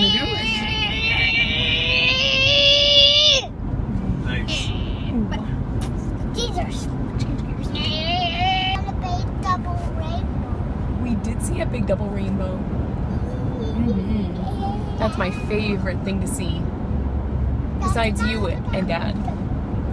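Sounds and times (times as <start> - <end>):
car road noise: 0.0 - 19.9.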